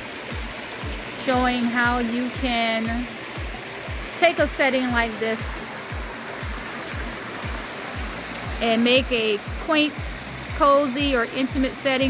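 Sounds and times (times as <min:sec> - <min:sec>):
background music with kick drum: 0:00.0 - 0:12.0
waterfall spilling into pool: 0:00.0 - 0:12.0.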